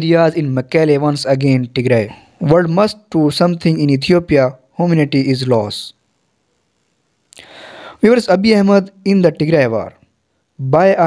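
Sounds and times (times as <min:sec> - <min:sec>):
man breathing in: 0:07.4 - 0:08.0.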